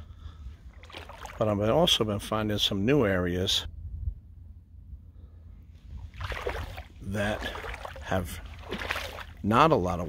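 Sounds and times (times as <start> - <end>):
low rumble: 0.0 - 9.4
water sloshing around legs: 0.6 - 1.8, 5.8 - 10.0.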